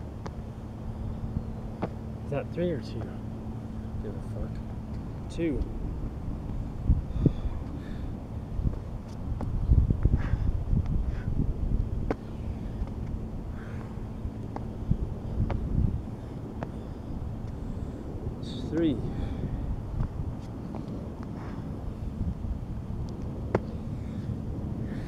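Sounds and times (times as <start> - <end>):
wind rumbling on microphone: 0.0 - 25.0.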